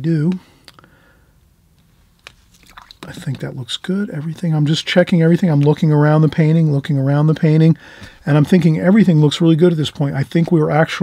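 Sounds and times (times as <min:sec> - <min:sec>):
faint mouth clicks: 0:00.6 - 0:00.9.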